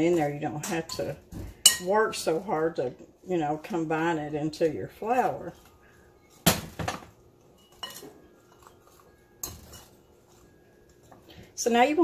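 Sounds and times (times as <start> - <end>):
metal spoon clinking glass bowl: 7.5 - 11.2.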